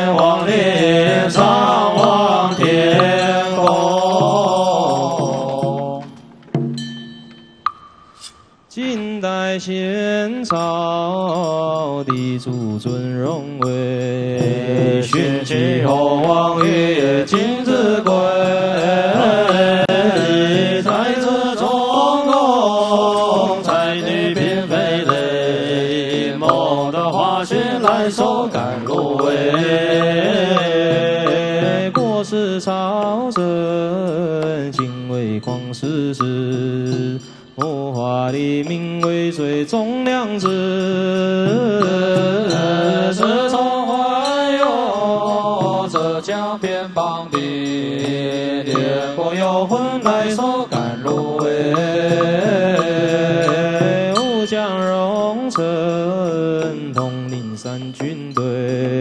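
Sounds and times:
person chanting slow melody: 0.0s - 6.3s, 8.7s - 59.0s.

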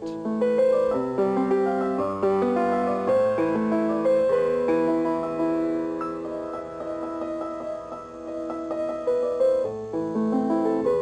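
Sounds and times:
grand piano melody: 0.0s - 11.0s.

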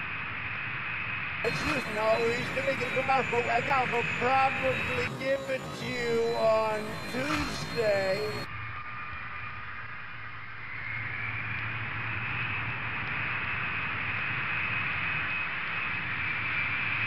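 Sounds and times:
jet engine rushing and humming: 0.0s - 8.5s
high engine whine: 0.0s - 17.0s.

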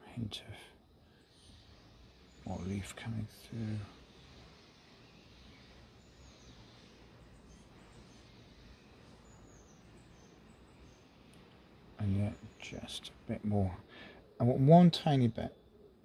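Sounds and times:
distant birds chirping: 0.0s - 16.0s.

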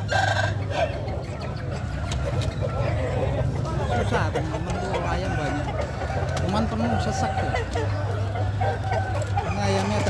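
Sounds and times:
crowd talking: 0.0s - 10.0s
roosters crowing: 0.0s - 10.0s.

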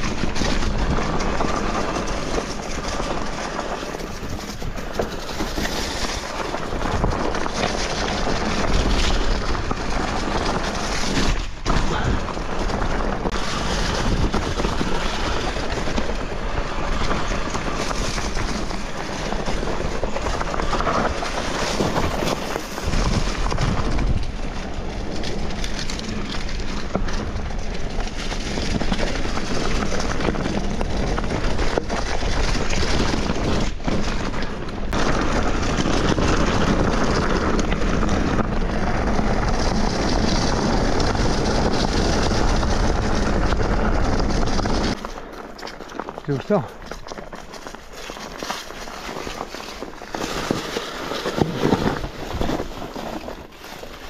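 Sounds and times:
bike tyre rumble: 0.0s - 54.0s.

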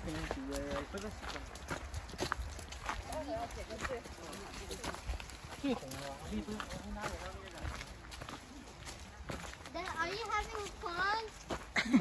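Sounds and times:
footsteps on dry leaves: 0.0s - 11.8s.

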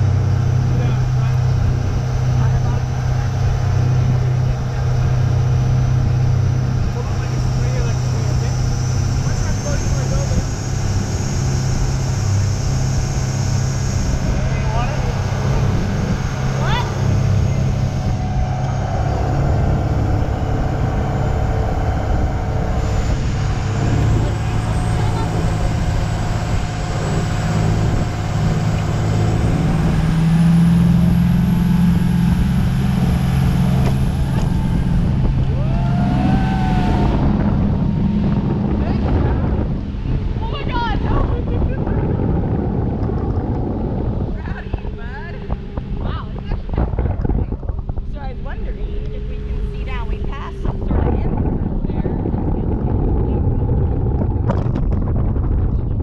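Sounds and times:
motorboat engine running: 0.0s - 56.0s
water rushing along hull: 0.0s - 56.0s
wind on microphone: 0.0s - 56.0s.

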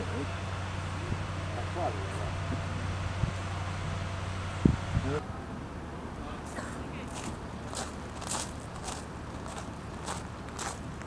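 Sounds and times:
low background rumble: 0.0s - 11.0s
footsteps: 7.1s - 10.8s.

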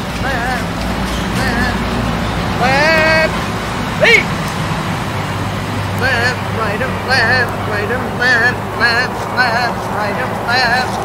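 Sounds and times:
high-pitched squeal: 0.0s - 5.1s
steady low rumble: 0.0s - 11.0s
sheep bleating: 2.6s - 3.4s.

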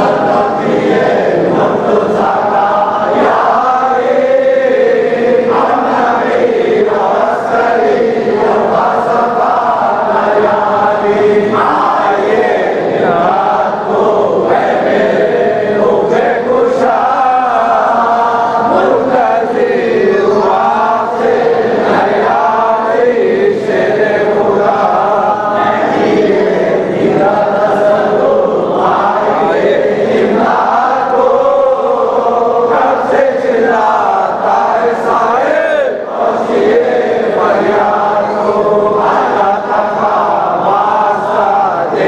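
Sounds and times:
men chanting a prayer: 0.0s - 42.0s.

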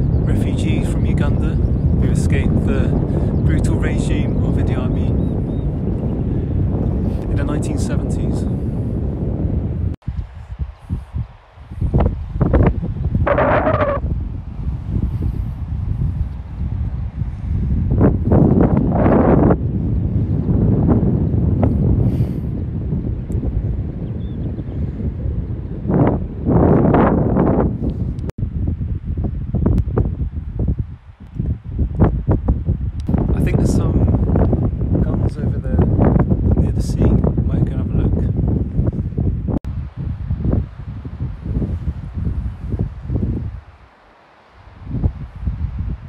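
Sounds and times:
wind buffeting microphone: 0.0s - 44.0s, 44.6s - 46.0s.

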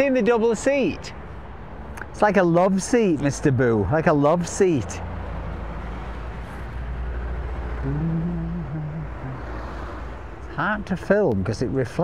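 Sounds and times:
street traffic rumble: 0.0s - 12.0s.

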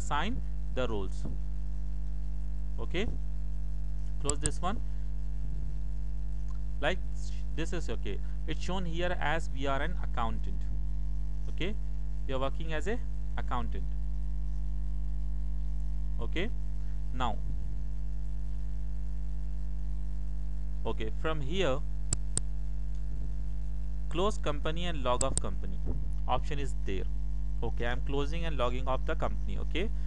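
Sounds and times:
electrical mains hum: 0.0s - 30.0s
narrator speaking: 2.8s - 3.2s, 4.2s - 4.8s, 11.5s - 13.9s, 16.2s - 17.4s, 24.1s - 29.9s.

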